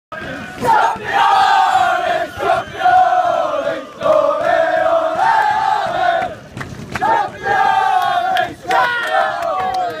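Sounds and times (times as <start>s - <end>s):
men chanting and singing: 0.2s - 6.4s.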